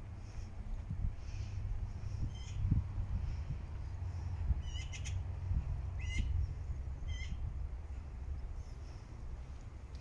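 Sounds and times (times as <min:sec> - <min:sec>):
steady low rumble: 0:00.0 - 0:10.0
small bird chirping: 0:02.3 - 0:02.6, 0:04.6 - 0:05.2, 0:07.0 - 0:07.4.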